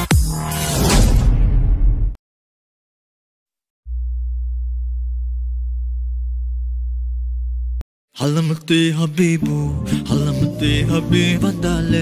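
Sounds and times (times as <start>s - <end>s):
low electronic sine hum: 3.9s - 7.8s.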